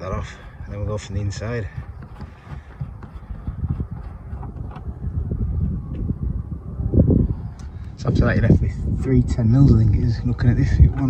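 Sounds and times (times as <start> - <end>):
wind buffeting microphone: 0.0 - 11.0
microphone handling noise: 1.0 - 9.1, 9.7 - 11.0.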